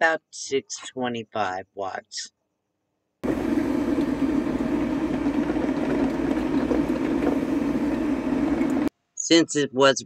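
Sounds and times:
drip coffee maker brewing: 3.2 - 8.9.

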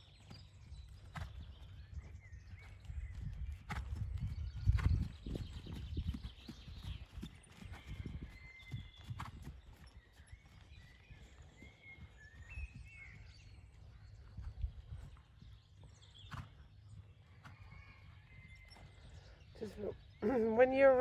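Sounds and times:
horse hoofbeats on sand: 0.0 - 21.0.

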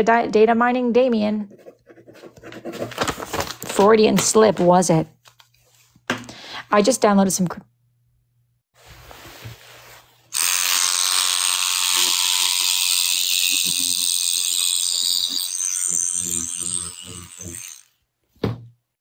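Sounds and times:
loud mechanical buzzing rattle: 10.3 - 18.0.

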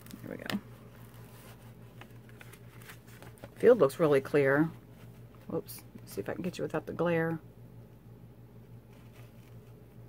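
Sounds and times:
plastic paper peeling and rustling: 0.0 - 4.3
steady low hum: 0.0 - 10.0.

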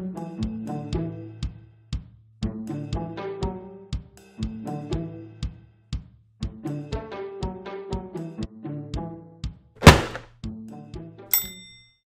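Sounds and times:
bright metallic ding: 11.3 - 12.0.

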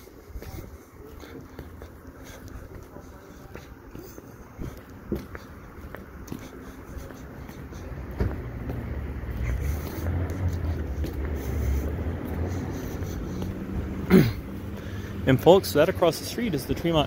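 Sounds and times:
passing car engine rumble: 4.6 - 17.0.

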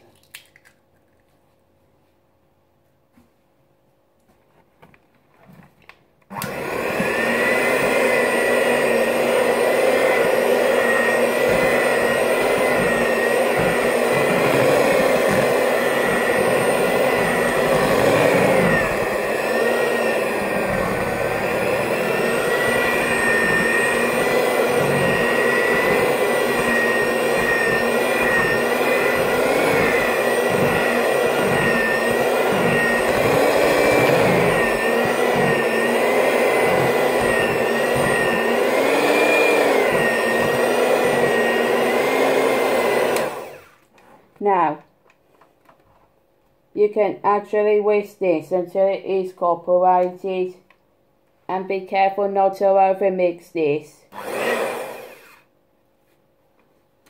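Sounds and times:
electric hand mixer whining: 6.3 - 43.9, 54.1 - 55.5.

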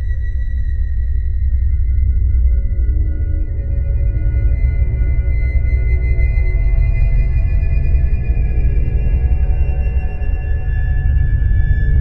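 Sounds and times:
deep steady rumble: 0.0 - 12.0
sustained high ringing tones: 0.0 - 12.0.

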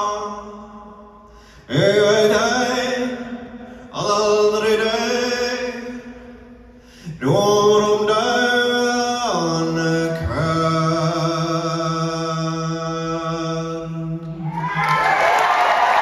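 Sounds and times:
man singing unaccompanied: 1.7 - 6.1, 7.1 - 14.3
audience cheering and applause: 14.4 - 16.0.

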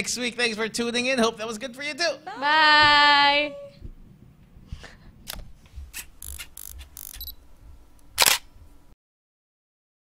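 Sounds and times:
microphone handling clicks and rustles: 3.8 - 7.3.

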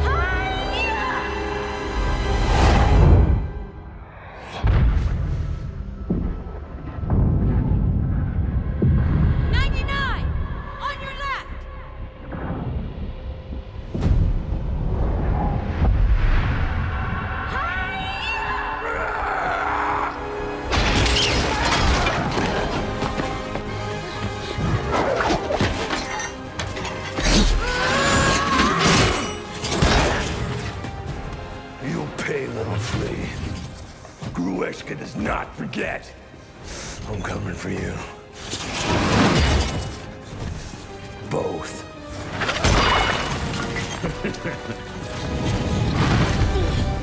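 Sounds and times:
dramatic orchestral score: 0.0 - 47.0
glass shattering: 42.4 - 44.4.

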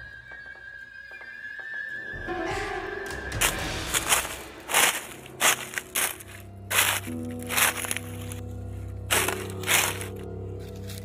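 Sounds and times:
dry leaves crunching: 3.4 - 11.0.

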